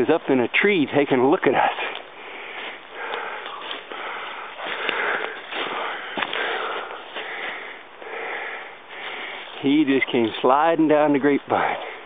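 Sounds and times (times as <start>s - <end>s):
person breathing hard: 1.7s - 9.6s, 11.6s - 12.0s.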